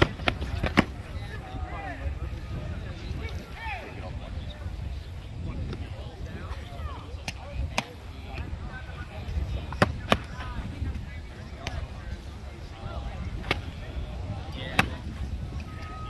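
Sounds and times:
faint chatter: 0.0 - 16.0.

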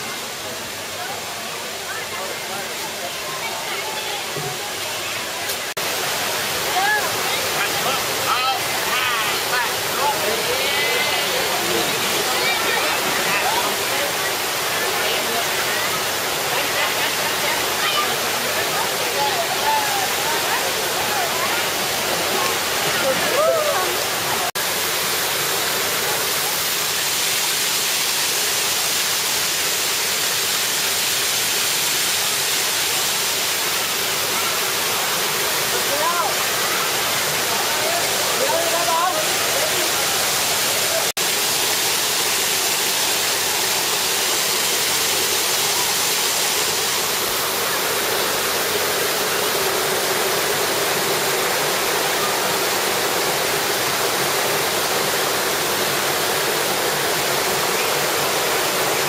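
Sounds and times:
faint voices: 0.0 - 24.6, 33.7 - 41.9
waterfall rushing: 0.0 - 59.0.

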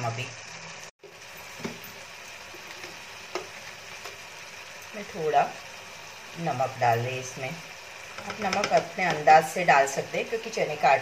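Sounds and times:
onions frying in oil sizzling: 0.0 - 11.0.

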